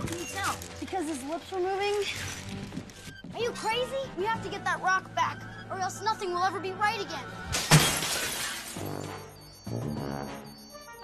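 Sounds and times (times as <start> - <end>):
film score music: 0.0 - 7.7, 8.6 - 11.0
glass breaking: 7.5 - 9.1.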